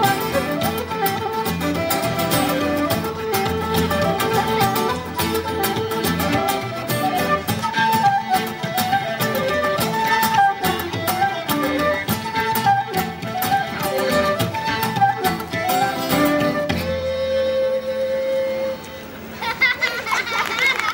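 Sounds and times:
frame drum beat: 0:00.0 - 0:17.1
strummed guitar: 0:00.0 - 0:19.0
fiddle melody: 0:00.0 - 0:19.7.

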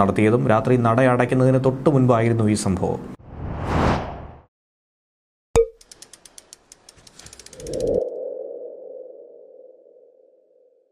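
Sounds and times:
whoosh: 0:03.2 - 0:04.5
quick ticks: 0:05.8 - 0:08.0.

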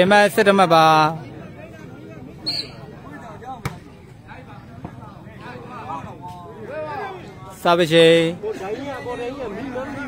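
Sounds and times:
faint crowd voices: 0:00.0 - 0:10.0.

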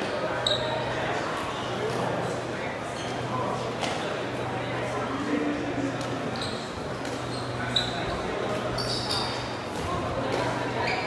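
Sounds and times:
crowd chatter in a sports hall: 0:00.0 - 0:11.0
short high squeak: 0:08.7 - 0:09.4.

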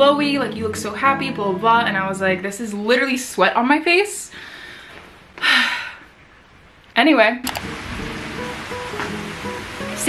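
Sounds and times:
slow melody background music: 0:00.0 - 0:03.1, 0:07.5 - 0:10.0.

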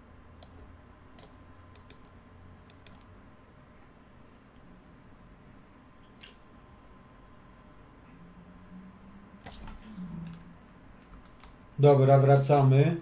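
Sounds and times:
faint steady hum: 0:00.0 - 0:13.0
computer mouse clicks: 0:01.2 - 0:03.1, 0:11.0 - 0:11.6.

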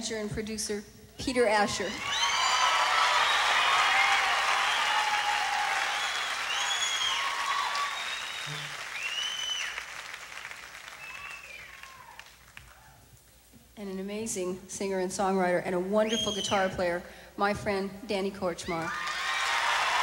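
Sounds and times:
whoops: 0:01.6 - 0:09.8, 0:11.0 - 0:13.0, 0:18.8 - 0:20.0
audience applauding and cheering: 0:01.9 - 0:13.0, 0:18.9 - 0:20.0.

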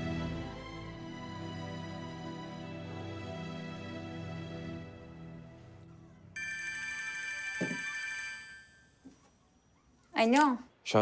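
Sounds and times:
phone ringing: 0:06.4 - 0:09.1.

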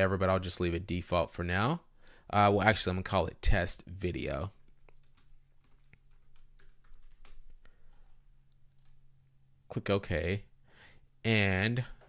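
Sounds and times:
typing on computer keyboard: 0:04.6 - 0:07.6, 0:08.7 - 0:09.0.

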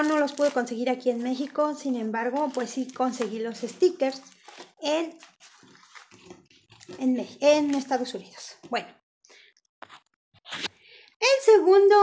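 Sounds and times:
paper rustling and tapping: 0:02.2 - 0:07.0.

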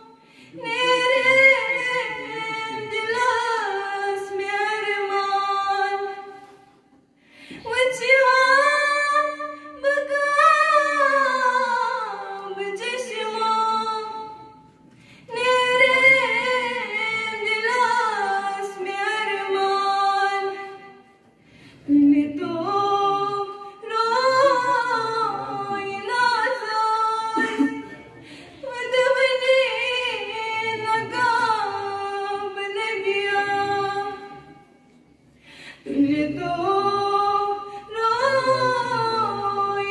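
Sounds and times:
woman singing into a microphone: 0:00.0 - 0:06.4, 0:07.4 - 0:14.5, 0:15.3 - 0:21.0, 0:21.8 - 0:28.0, 0:28.6 - 0:34.6, 0:35.6 - 0:39.9.

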